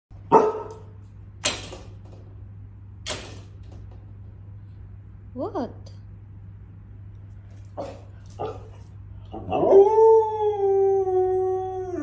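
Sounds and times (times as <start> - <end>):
large dog barking: 0.3 - 0.8, 7.8 - 8.8.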